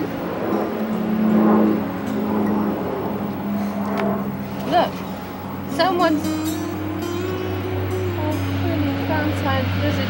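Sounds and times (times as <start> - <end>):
low motor hum: 0.0 - 10.0.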